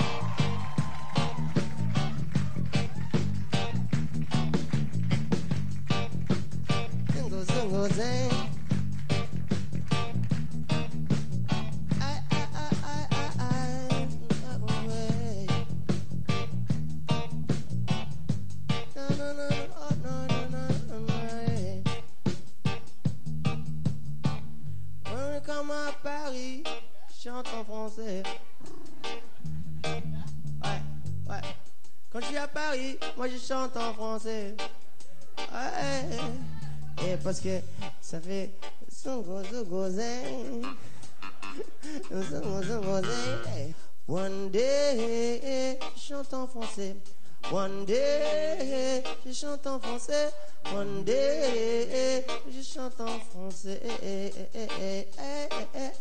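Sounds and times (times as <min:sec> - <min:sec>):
person singing: 0:00.0 - 0:03.8, 0:06.8 - 0:09.2, 0:12.0 - 0:15.8, 0:18.8 - 0:22.1, 0:25.1 - 0:56.0
acoustic band music: 0:00.0 - 0:56.0
low guitar rhythm: 0:00.0 - 0:56.0
person singing long sliding notes: 0:39.4 - 0:44.2.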